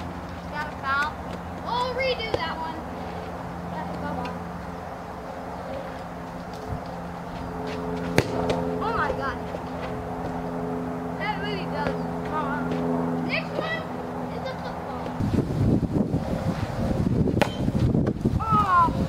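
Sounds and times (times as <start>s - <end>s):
bat smacking a ball: 8.0s - 8.6s, 17.3s - 17.7s.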